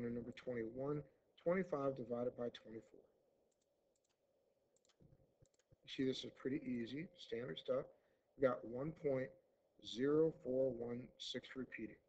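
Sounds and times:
computer mouse clicks: 0:03.5 - 0:04.2, 0:04.8 - 0:05.8.

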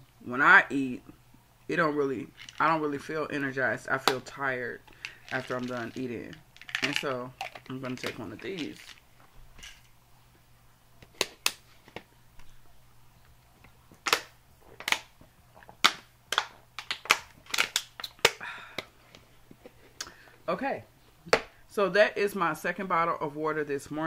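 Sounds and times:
plastic bottle clicks and crackles: 0:04.9 - 0:09.0, 0:13.9 - 0:18.9.

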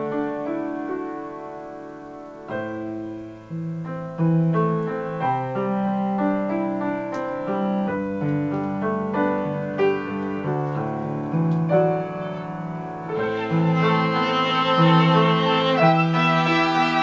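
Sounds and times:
grand piano playing chords: 0:00.0 - 0:17.0.

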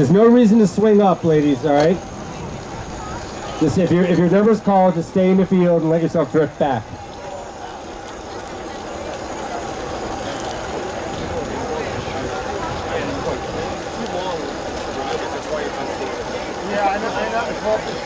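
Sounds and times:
spectators chattering: 0:00.0 - 0:18.0.

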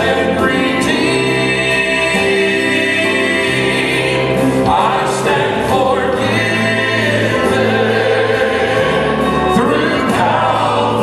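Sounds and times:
male quartet singing in harmony: 0:00.0 - 0:11.0.

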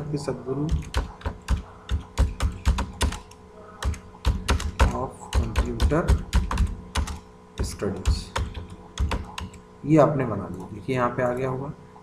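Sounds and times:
typing on computer keyboard: 0:00.7 - 0:09.6.

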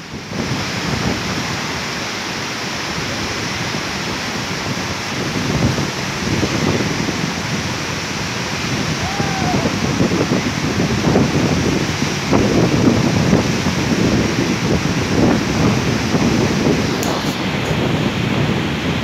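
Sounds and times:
waterfall rushing: 0:00.0 - 0:19.0
wind buffeting microphone: 0:00.0 - 0:19.0.

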